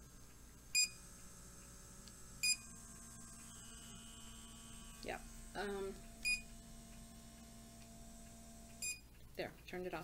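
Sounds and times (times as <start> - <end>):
device motor hum: 0.0 - 9.3
short electronic beeps: 6.2 - 6.5, 8.8 - 9.0.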